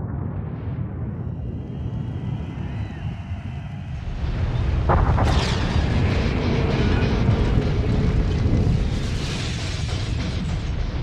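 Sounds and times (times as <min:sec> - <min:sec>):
deep low rumble: 0:00.0 - 0:11.0.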